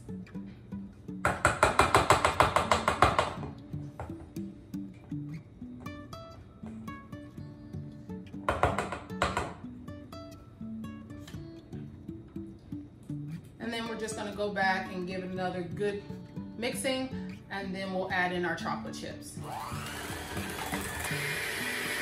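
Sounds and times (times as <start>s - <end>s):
acoustic guitar music: 0.0s - 22.0s.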